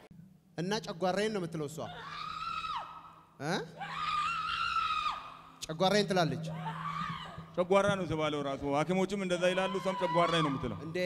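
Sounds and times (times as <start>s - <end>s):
person screaming high-pitched: 6.5s - 7.4s, 9.6s - 10.8s.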